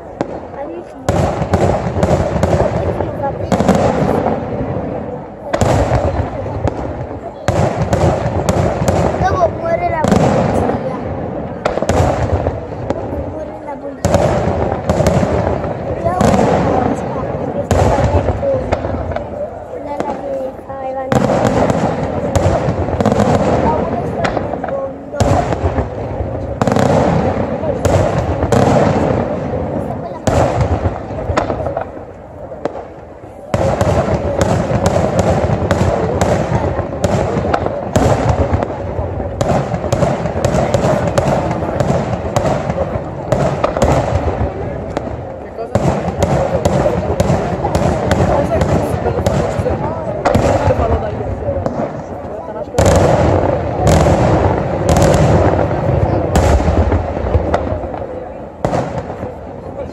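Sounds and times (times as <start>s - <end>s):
fireworks bangs and crackling: 0.0s - 59.9s.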